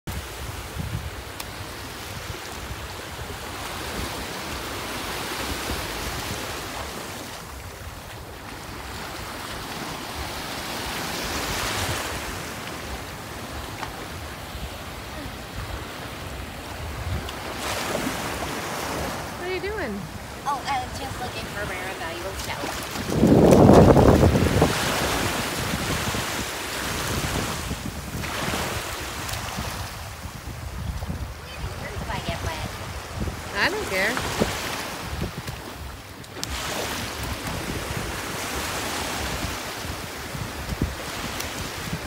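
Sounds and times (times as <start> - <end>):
small waves breaking: 0.1 - 42.0
wind buffeting microphone: 0.1 - 42.0.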